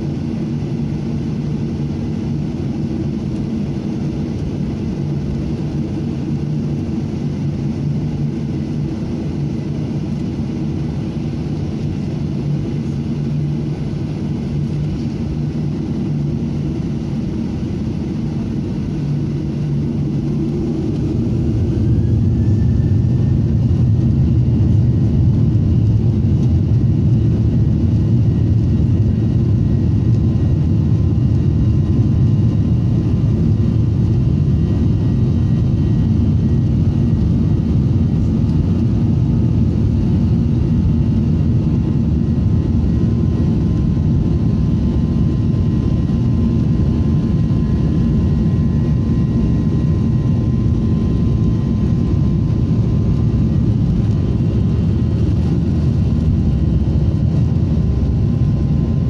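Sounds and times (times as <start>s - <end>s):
jet cabin low rumble: 0.0s - 59.0s
jet engines spooling up whine: 0.0s - 59.0s.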